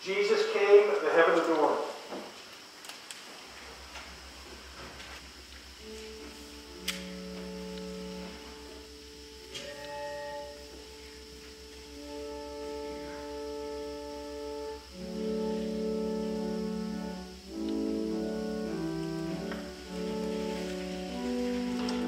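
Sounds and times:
pipe organ chords: 0:00.0 - 0:02.1, 0:03.4 - 0:22.0
pulsing low hum: 0:03.4 - 0:22.0.

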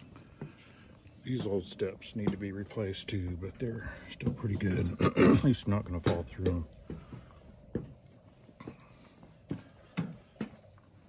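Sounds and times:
footsteps on wooden stairs: 0:00.0 - 0:03.0, 0:03.8 - 0:10.8
insects chirring: 0:00.0 - 0:11.0.

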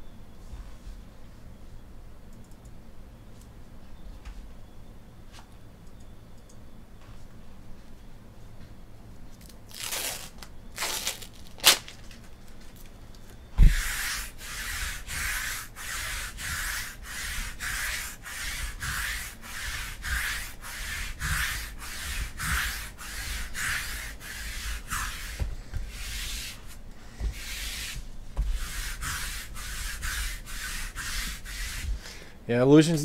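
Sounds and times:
thump: 0:13.6 - 0:13.8.

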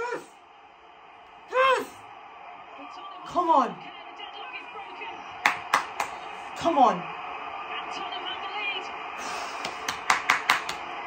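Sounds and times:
stadium crowd noise: 0:00.0 - 0:11.0
sharp hand claps: 0:05.4 - 0:06.3, 0:09.3 - 0:11.0.

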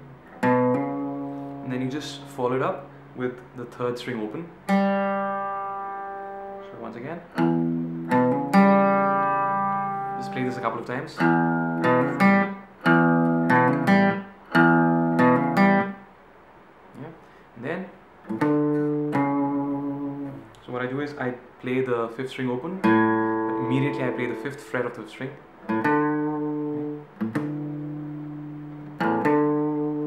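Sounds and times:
acoustic guitar notes: 0:00.0 - 0:03.8, 0:04.4 - 0:16.1, 0:18.2 - 0:20.7, 0:22.8 - 0:30.0
acoustic guitar note ringing: 0:04.7 - 0:15.9
man's voice: 0:23.5 - 0:25.4.

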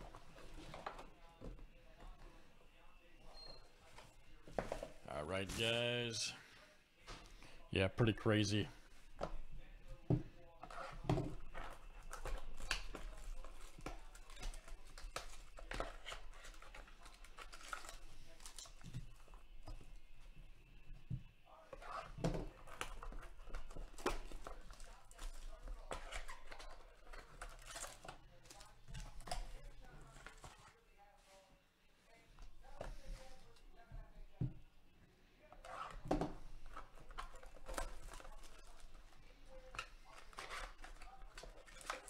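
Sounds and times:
cardboard boxes handled on a table: 0:03.8 - 0:05.0.

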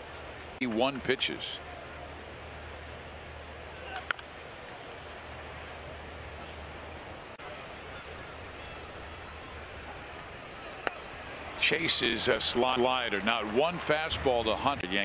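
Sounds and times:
crowd murmur: 0:01.6 - 0:13.9
low hum: 0:05.5 - 0:12.8
baseball bat crack: 0:07.7 - 0:11.6.

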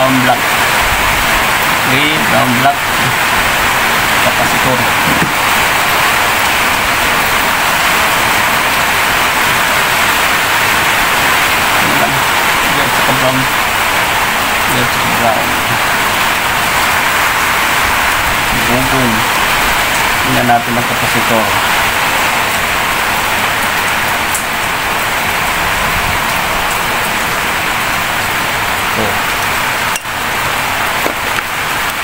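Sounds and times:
heavy rain falling: 0:00.0 - 0:32.0.

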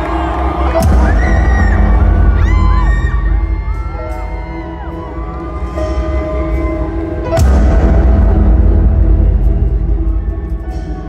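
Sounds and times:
crowd cheering and screaming: 0:00.0 - 0:08.6, 0:09.7 - 0:11.0
deep bass drone: 0:06.9 - 0:11.0.

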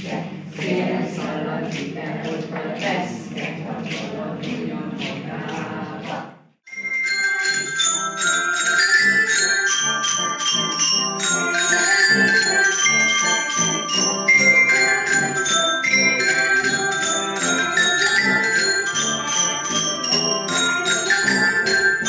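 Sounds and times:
glockenspiels playing a tune: 0:06.7 - 0:22.0.

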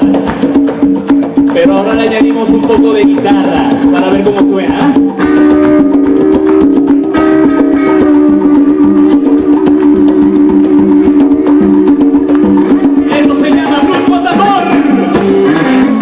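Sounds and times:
electric guitar lead: 0:00.0 - 0:16.0
live dance band: 0:00.0 - 0:16.0
steady percussion: 0:00.0 - 0:16.0.

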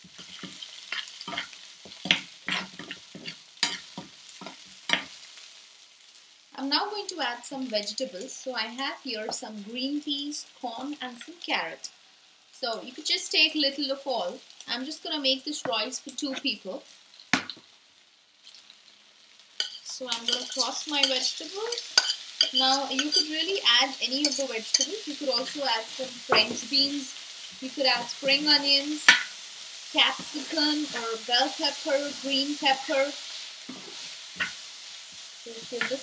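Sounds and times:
onions sizzling in oil: 0:00.0 - 0:36.0
spatula scraping pan: 0:00.1 - 0:05.2, 0:19.6 - 0:36.0.

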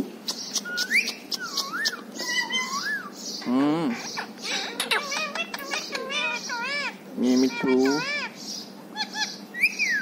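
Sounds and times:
parakeets whistling: 0:00.3 - 0:10.0.

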